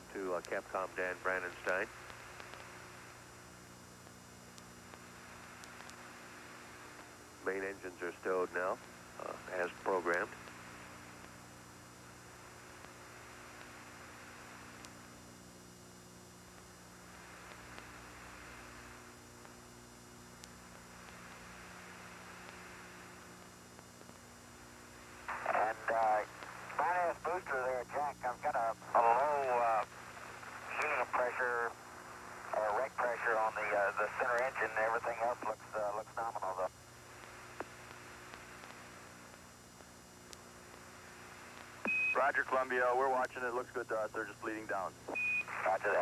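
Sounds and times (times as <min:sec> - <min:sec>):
radio hiss with electrical hum: 0:00.0 - 0:46.0
man's voice over radio: 0:00.1 - 0:01.9, 0:07.4 - 0:10.4, 0:25.3 - 0:29.9, 0:30.6 - 0:31.8, 0:32.4 - 0:36.7, 0:42.1 - 0:44.9, 0:45.5 - 0:46.0.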